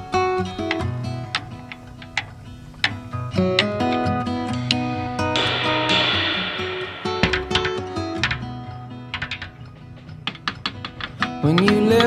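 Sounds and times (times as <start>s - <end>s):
acoustic backing music: 0.0s - 12.0s
drumsticks tapping: 9.1s - 12.0s.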